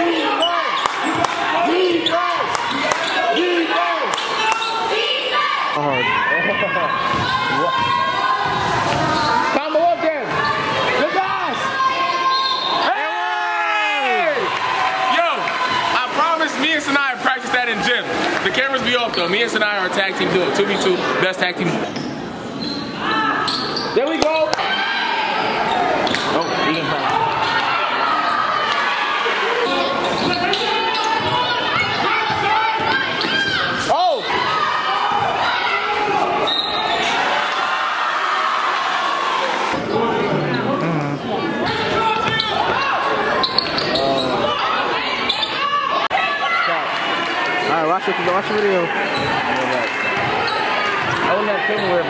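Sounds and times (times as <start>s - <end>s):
din of many voices: 0.0s - 52.0s.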